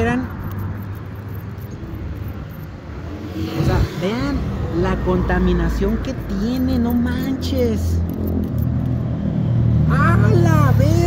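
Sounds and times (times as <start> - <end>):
vehicle engine hum: 0.0 - 11.0.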